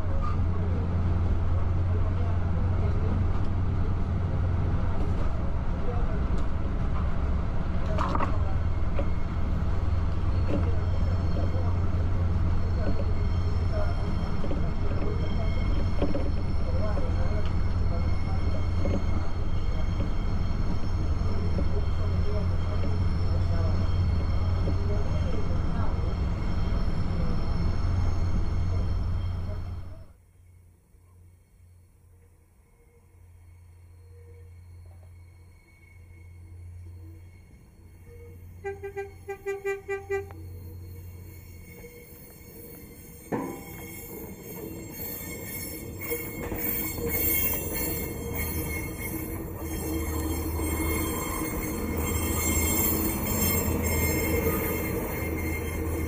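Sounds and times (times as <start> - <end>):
railcar passing: 0.0 - 56.0
railcar rumbling: 0.0 - 56.0
train horn toots: 38.5 - 40.6.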